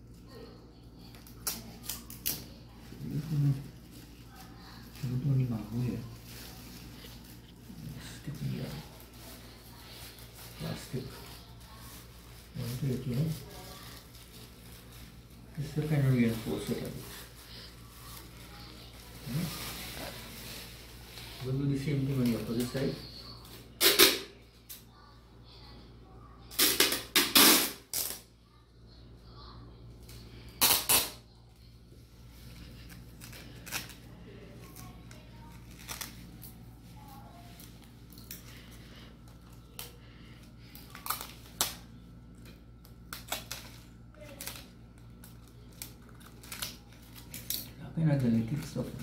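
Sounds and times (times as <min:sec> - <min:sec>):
plastic sheeting crackling: 0:01.0 - 0:24.2
packing tape pulled off roll: 0:26.5 - 0:28.3, 0:30.1 - 0:31.2, 0:32.9 - 0:34.0, 0:43.1 - 0:47.7.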